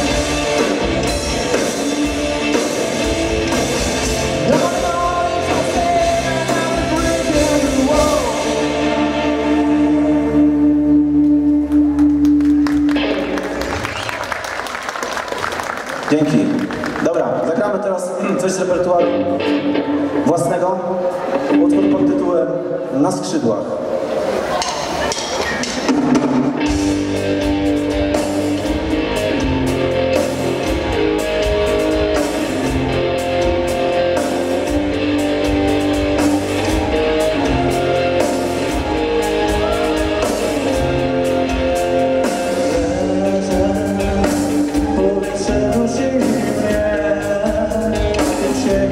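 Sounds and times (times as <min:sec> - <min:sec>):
rock band chord ringing: 0:00.0 - 0:11.0, 0:26.0 - 0:48.9
keyboard: 0:00.0 - 0:14.0, 0:16.1 - 0:48.9
bass guitar: 0:00.0 - 0:14.4, 0:25.0 - 0:48.9
electric guitar: 0:00.0 - 0:17.5, 0:18.6 - 0:22.9, 0:25.5 - 0:48.9
audience applauding: 0:11.7 - 0:17.4
drum and cymbal hits: 0:24.6 - 0:48.9.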